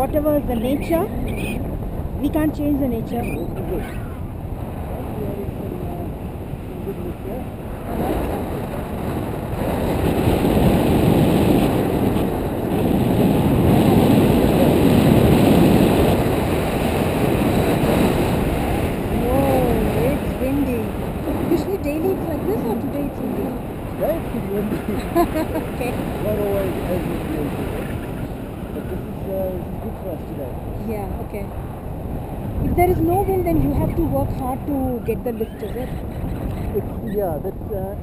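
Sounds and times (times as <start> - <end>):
wind rushing over microphone: 0.0 - 38.0
person's voice: 19.1 - 27.6.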